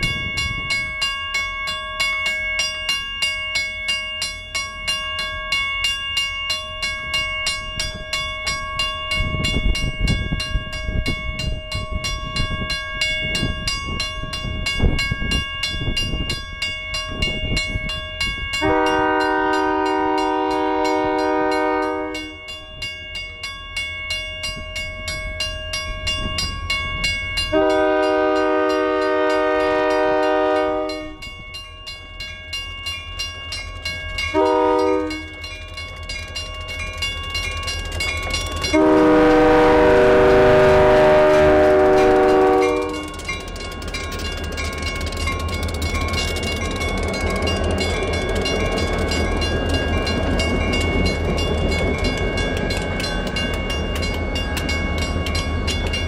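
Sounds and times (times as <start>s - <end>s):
bell ringing: 0.0s - 56.0s
locomotive engine and wheel rumble: 0.0s - 56.0s
locomotive air horn blasts: 18.6s - 22.4s, 27.5s - 31.2s, 34.3s - 35.4s, 38.7s - 43.3s.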